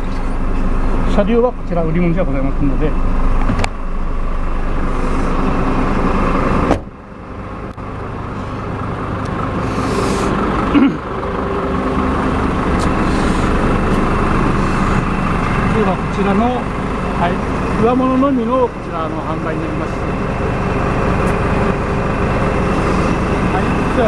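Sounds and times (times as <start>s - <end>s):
diesel engine idling: 0.0s - 24.0s.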